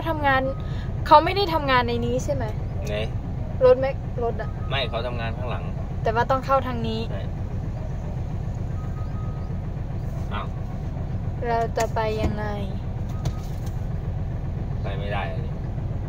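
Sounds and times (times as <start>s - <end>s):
diesel truck engine droning: 0.0s - 16.0s.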